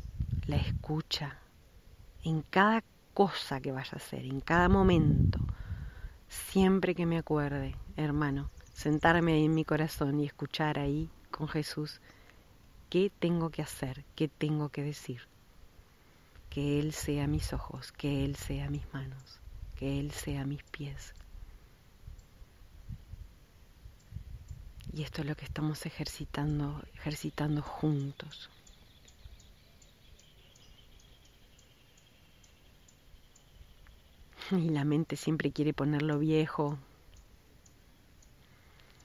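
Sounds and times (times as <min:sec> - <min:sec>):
faint low rumble: 0:00.0 - 0:39.0
tiny faint clicks: 0:12.1 - 0:12.4, 0:20.6 - 0:21.4, 0:24.0 - 0:25.0, 0:32.0 - 0:34.6, 0:36.0 - 0:39.0.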